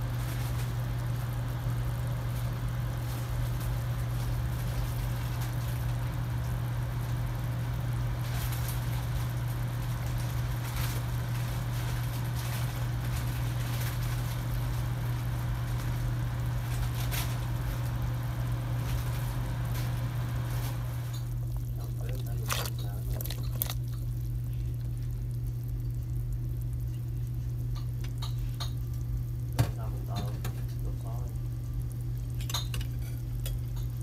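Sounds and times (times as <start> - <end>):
soup boiling and bubbling: 0.0 - 34.0
loud steady low hum: 18.5 - 27.4.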